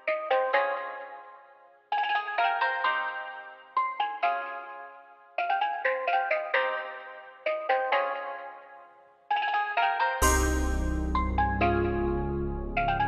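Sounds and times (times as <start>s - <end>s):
bass line: 10.2s - 13.0s
bell-like melody: 10.2s - 13.0s.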